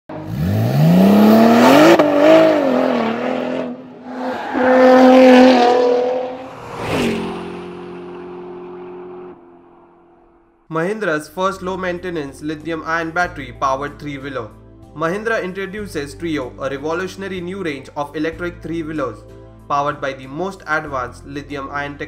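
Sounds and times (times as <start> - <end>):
car engine revving: 0.1 - 10.6.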